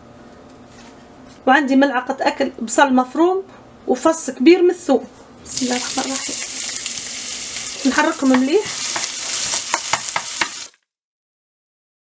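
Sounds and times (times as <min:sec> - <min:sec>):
onion sizzling in oil: 0:05.5 - 0:10.8
wooden spoon scraping pan: 0:07.8 - 0:10.7.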